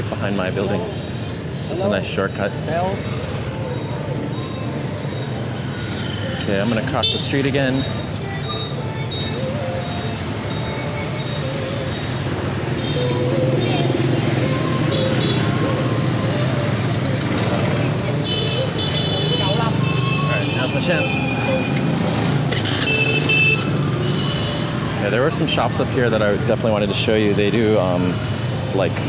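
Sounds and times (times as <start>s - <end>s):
horns beeping: 0.0s - 26.7s
motorbikes and scooters passing: 0.0s - 29.0s.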